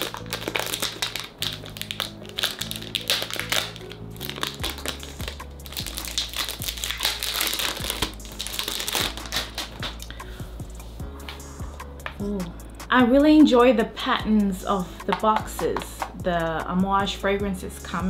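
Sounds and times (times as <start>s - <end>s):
wrapping crinkling and tearing: 0.0s - 10.2s
background music with low notes: 0.0s - 18.0s.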